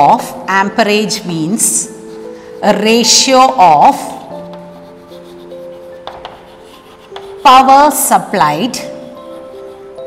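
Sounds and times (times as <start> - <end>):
soft background music: 0.0 - 10.0
chalk scratching on chalkboard: 1.5 - 10.0
chalk tapping on chalkboard: 4.4 - 8.1.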